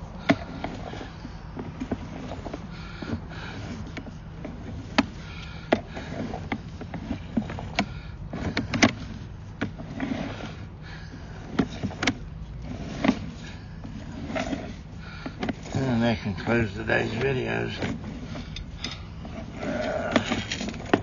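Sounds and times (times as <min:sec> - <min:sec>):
cable clicks and knocks: 0:00.0 - 0:10.5
low steady hum: 0:00.0 - 0:21.0.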